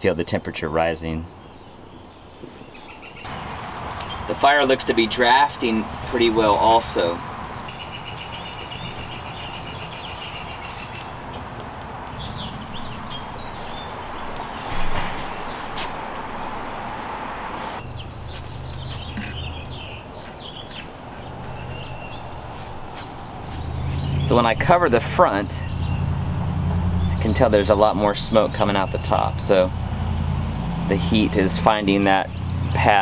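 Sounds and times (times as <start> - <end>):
small birds chirping: 0.1 - 16.6, 17.7 - 33.0
steady hiss: 3.3 - 17.8.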